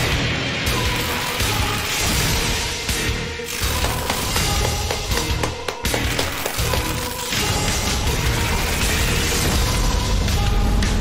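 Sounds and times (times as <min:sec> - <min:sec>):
action soundtrack music with pulsing bass: 0:00.0 - 0:11.0.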